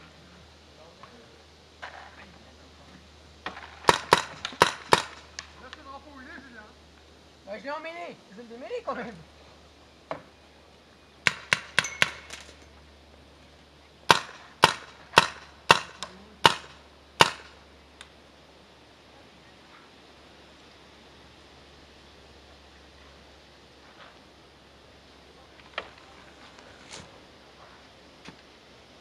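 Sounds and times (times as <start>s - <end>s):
paintball marker firing: 3.5s - 5.2s, 11.2s - 12.5s, 14.1s - 17.6s.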